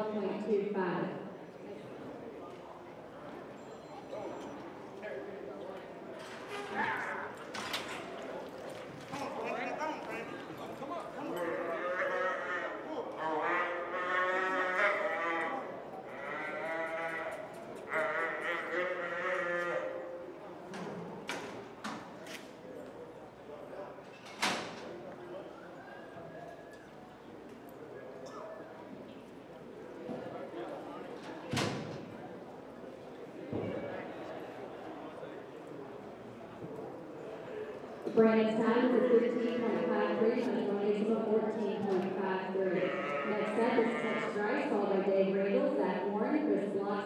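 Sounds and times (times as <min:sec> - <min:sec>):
calf bawling: 0:11.4 - 0:20.0.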